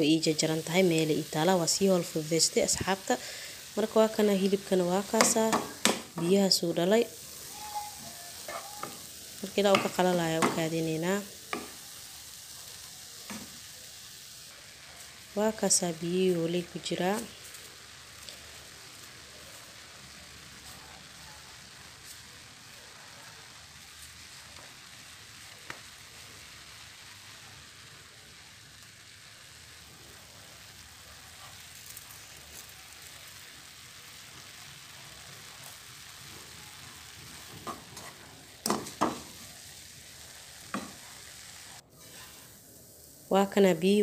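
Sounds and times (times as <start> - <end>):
meat sizzling in a frying pan: 0.0 - 44.0
wooden spatula stirring: 41.9 - 42.5.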